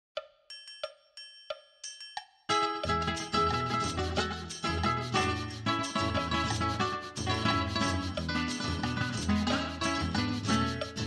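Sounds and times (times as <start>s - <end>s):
pitched percussive notes: 0.2s - 11.0s.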